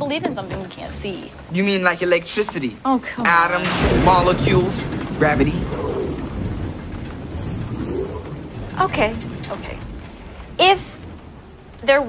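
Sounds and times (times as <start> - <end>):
low rumble: 3.3 - 12.0.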